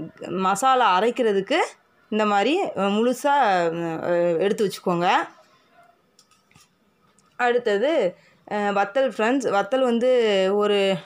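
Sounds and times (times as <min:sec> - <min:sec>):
woman speaking: 0:00.0 - 0:05.5, 0:07.4 - 0:11.0.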